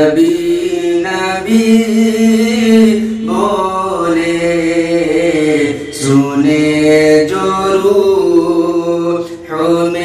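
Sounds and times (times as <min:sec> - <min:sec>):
man singing devotional song: 0:00.0 - 0:10.0.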